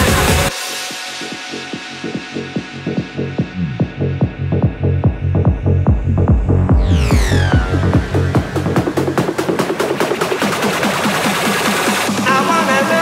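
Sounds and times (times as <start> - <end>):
electronic dance music: 0.0 - 13.0
falling synth sweep: 6.2 - 12.2.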